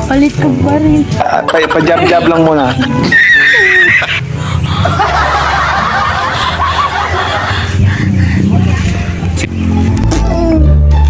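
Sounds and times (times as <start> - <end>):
person laughing: 1.2 - 8.9.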